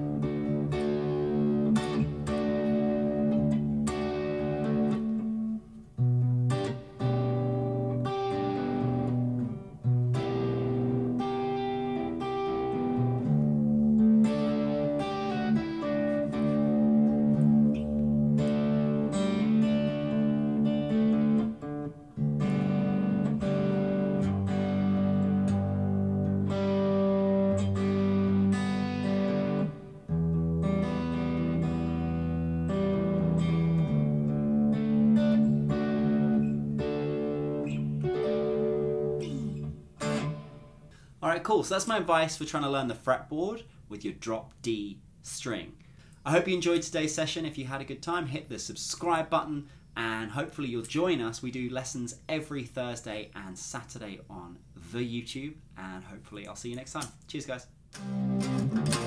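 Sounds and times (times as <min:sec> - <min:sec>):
electric guitar chords: 0:00.0 - 0:41.2, 0:57.9 - 0:59.0.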